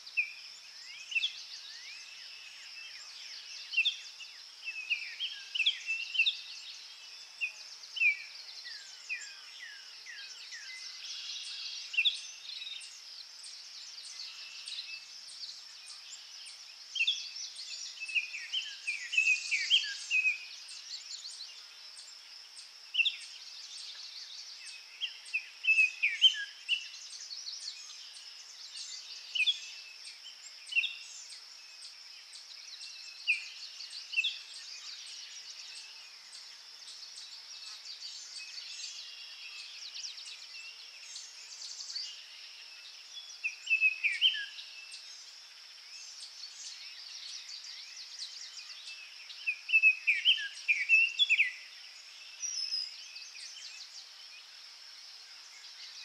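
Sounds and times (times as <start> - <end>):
songbirds chirping and singing: 0.0 - 56.0.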